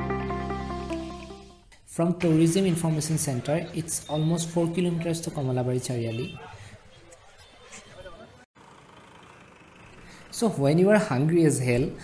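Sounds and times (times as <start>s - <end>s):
distant traffic: 2.2s - 12.0s.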